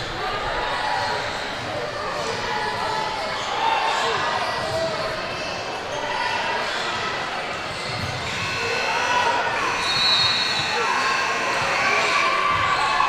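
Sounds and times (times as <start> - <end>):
many voices talking: 0.0 - 13.0.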